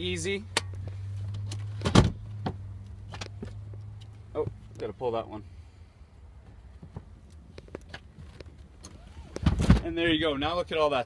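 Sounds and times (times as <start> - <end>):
seat latches clicking and clunking: 0.5 - 3.5.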